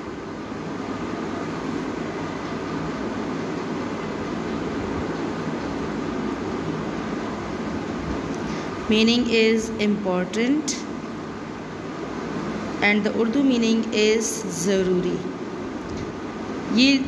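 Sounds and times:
electric fan whirring: 0:00.0 - 0:17.0.

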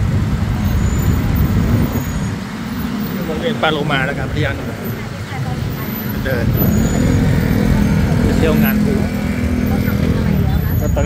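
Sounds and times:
car engines running: 0:00.0 - 0:11.0
motor scooter engine: 0:00.0 - 0:11.0.

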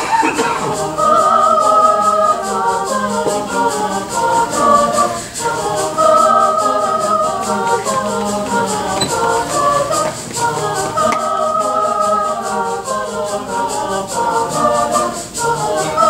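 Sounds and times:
choir singing: 0:00.0 - 0:16.0
rhythmic ticking: 0:00.0 - 0:16.0.

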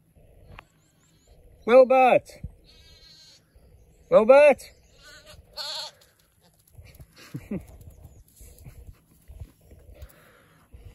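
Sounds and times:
lamb bleating faintly: 0:02.6 - 0:03.4, 0:05.0 - 0:06.0.

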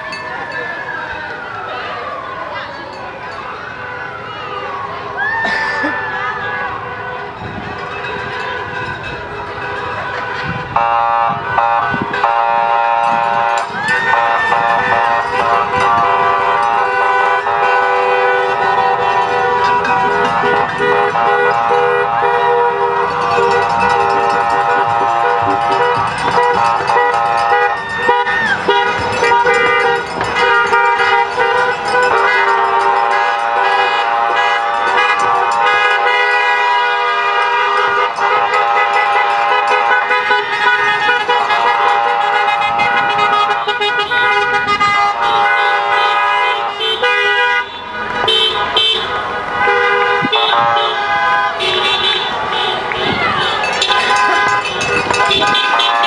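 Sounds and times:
car horns honking: 0:06.9 - 0:56.0.

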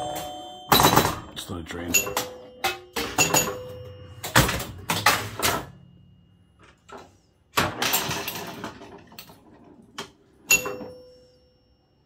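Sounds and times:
pinball machine mechanical clacks: 0:00.0 - 0:05.9, 0:06.6 - 0:11.2
ringing chime: 0:00.0 - 0:07.4, 0:10.4 - 0:12.0.

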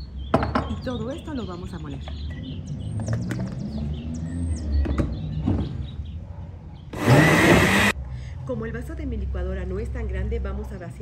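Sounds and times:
birds chirping: 0:00.0 - 0:07.9
blender motor running: 0:07.0 - 0:08.0.

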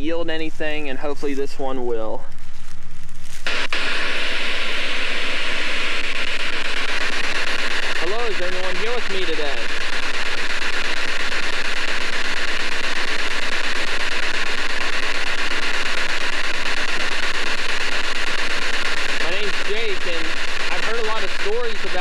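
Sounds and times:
radio static fluttering: 0:00.0 - 0:22.0
scraps of broadcast sound: 0:00.0 - 0:22.0.

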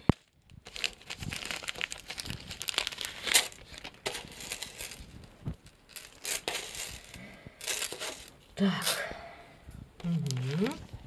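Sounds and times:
plastic packaging crinkling: 0:00.0 - 0:08.5, 0:10.0 - 0:11.0.

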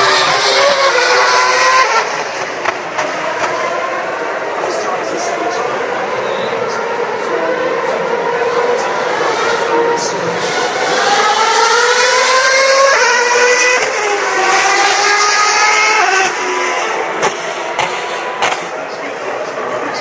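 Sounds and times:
racing car accelerating past: 0:05.8 - 0:20.0.

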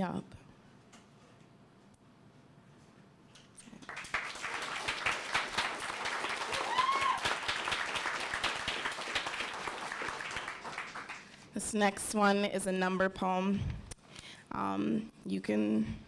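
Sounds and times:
audience clapping: 0:03.6 - 0:11.4
person whooping: 0:06.4 - 0:07.5.

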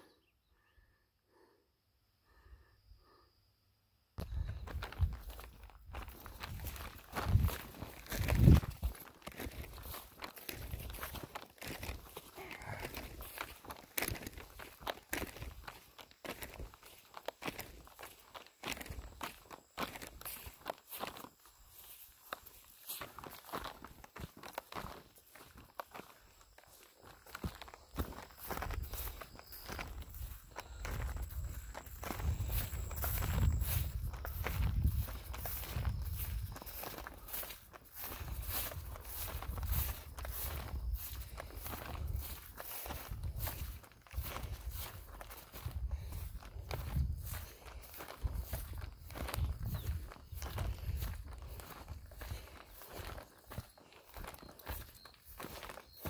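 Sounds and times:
rubber boots walking on wet mud: 0:04.2 - 0:56.0.

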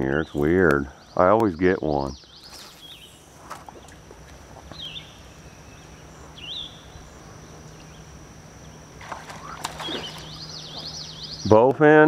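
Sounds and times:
birds chirping: 0:00.0 - 0:12.0
high-pitched insect drone: 0:00.1 - 0:11.8.

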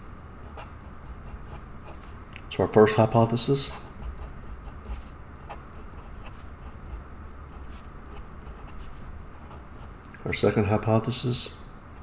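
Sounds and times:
steady low hum: 0:00.0 - 0:12.0
marker writing on paper: 0:03.5 - 0:09.6.

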